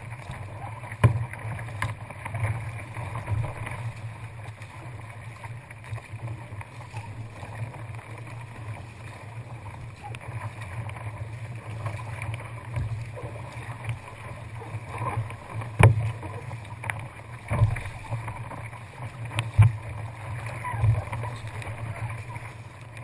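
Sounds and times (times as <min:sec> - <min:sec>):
water splashing around a kayak: 0:00.0 - 0:23.0.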